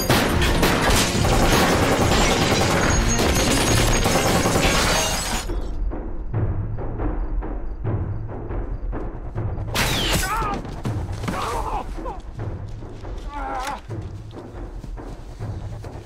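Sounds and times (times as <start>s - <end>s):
dramatic action score: 0.0s - 16.0s
glassware shattering: 2.4s - 5.7s.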